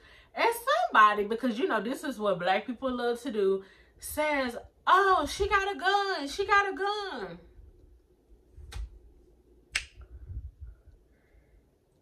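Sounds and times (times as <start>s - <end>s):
finger snaps: 9.7s - 10.2s.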